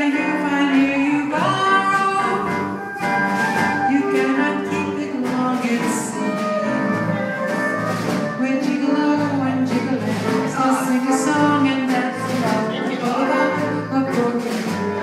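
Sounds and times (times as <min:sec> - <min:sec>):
live band music: 0:00.0 - 0:15.0.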